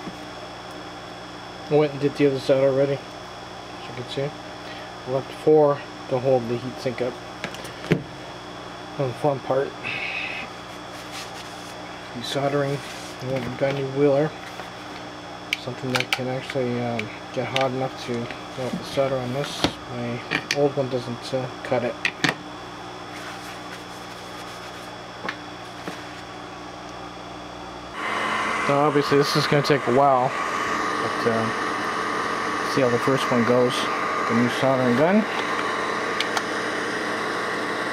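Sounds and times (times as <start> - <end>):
steady low hum: 0.0 - 37.9.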